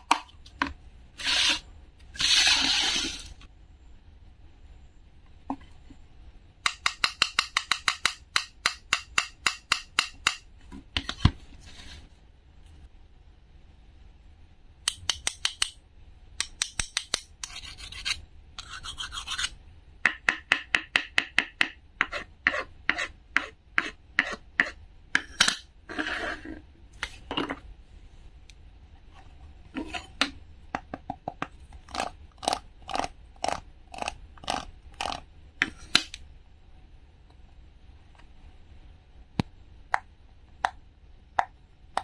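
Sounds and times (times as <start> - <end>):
wooden knife scraping wood: 25.9 - 26.6.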